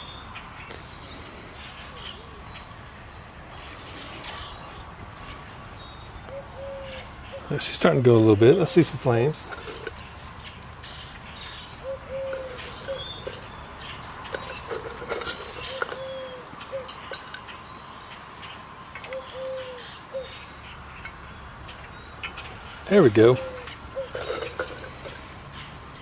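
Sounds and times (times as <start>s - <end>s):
bird cooing: 6.3s - 7.6s, 11.8s - 13.6s, 14.3s - 17.3s, 19.0s - 20.7s, 23.0s - 25.7s.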